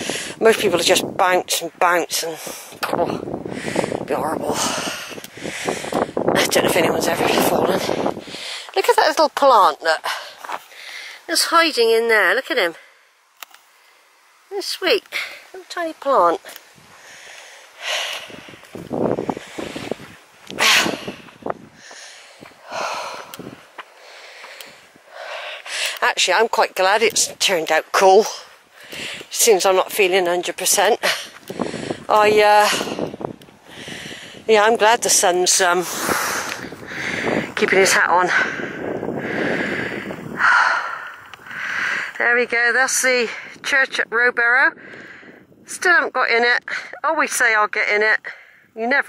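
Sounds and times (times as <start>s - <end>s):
person breathing: 0.0s - 0.4s, 2.3s - 6.3s, 7.7s - 8.8s, 10.0s - 11.3s, 16.8s - 26.0s, 28.4s - 29.3s, 31.0s - 32.1s, 32.7s - 34.5s, 35.8s - 37.6s, 38.3s - 42.2s, 44.8s - 45.6s, 48.3s - 48.8s
footsteps on dirt path: 10.0s - 11.1s, 16.4s - 42.3s
person breathing out: 20.6s - 26.0s, 33.7s - 34.4s, 35.9s - 37.6s, 38.3s - 42.2s.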